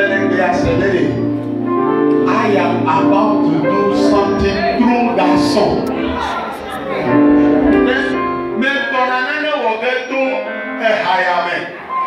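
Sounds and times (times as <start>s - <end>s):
live worship band music: 0.0s - 12.0s.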